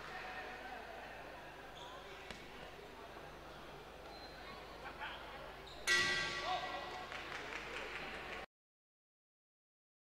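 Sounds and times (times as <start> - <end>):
indistinct voices in a large hall: 0.0 - 8.5.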